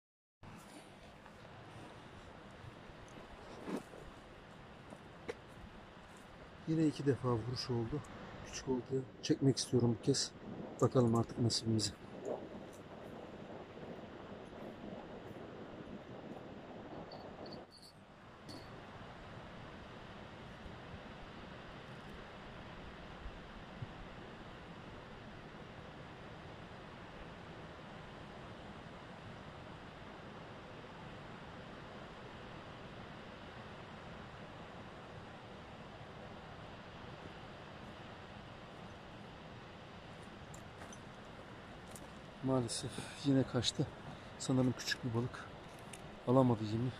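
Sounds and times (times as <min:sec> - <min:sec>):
outdoor background hiss: 0:00.4 - 0:46.9.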